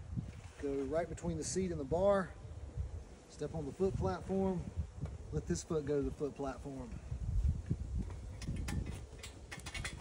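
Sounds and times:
metal tree stand clicking: 0:08.4 - 0:10.0.

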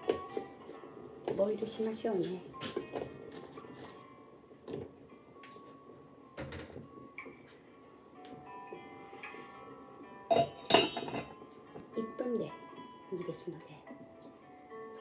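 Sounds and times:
metal pot lid clanking: 0:10.3 - 0:11.4.

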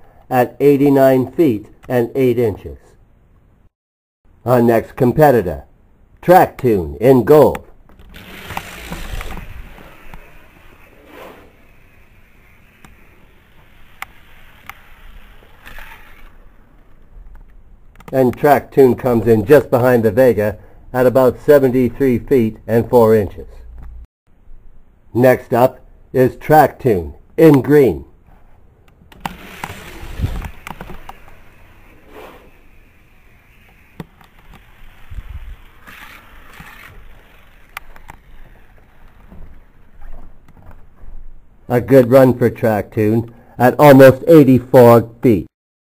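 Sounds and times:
toy car rolling on plastic track: 0:08.0 - 0:16.6, 0:29.2 - 0:39.9
scraping hiss: 0:08.2 - 0:16.3, 0:29.4 - 0:34.0
hissing rush: 0:31.5 - 0:32.7.

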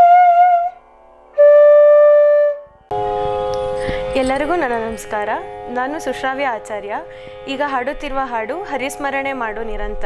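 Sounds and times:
held flute note: 0:00.0 - 0:05.0
drone of held tones: 0:00.0 - 0:07.6.

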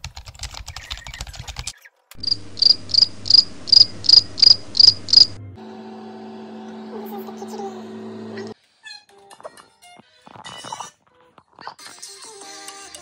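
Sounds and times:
laptop keyboard typing: 0:00.0 - 0:03.4
high chirps: 0:02.2 - 0:05.6
steady low hum: 0:02.2 - 0:08.6.

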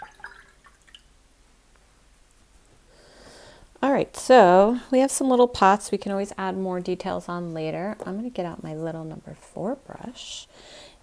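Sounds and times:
water dripping: 0:00.0 - 0:01.2.

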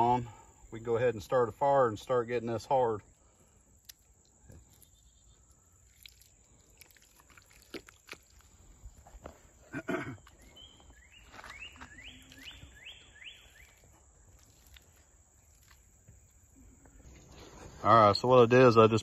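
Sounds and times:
hands squelching wet clay: 0:02.9 - 0:17.8
bird singing: 0:04.2 - 0:06.9, 0:09.9 - 0:19.0.

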